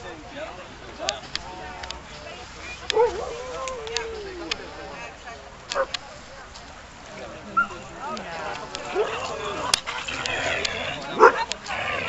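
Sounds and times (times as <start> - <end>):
background voices: 0.0 - 12.0
dog barking: 2.9 - 3.8, 5.7 - 6.0, 8.9 - 9.2, 11.2 - 11.5.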